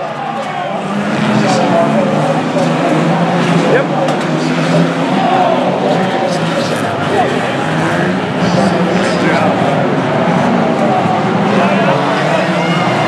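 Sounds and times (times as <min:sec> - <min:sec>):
people's voices: 0:00.0 - 0:13.0
racing car engines droning: 0:00.0 - 0:13.0.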